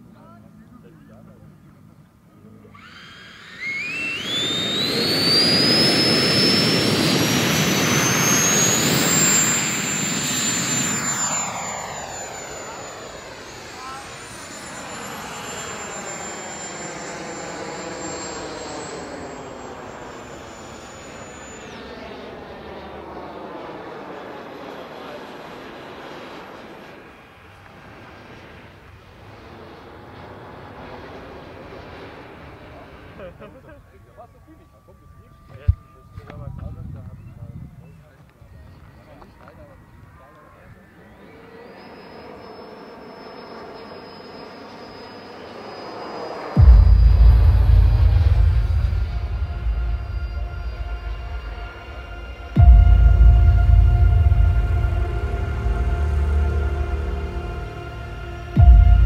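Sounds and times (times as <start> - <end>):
electric ducted-fan motor whine: 2.4 - 25.2, 39.0 - 59.0.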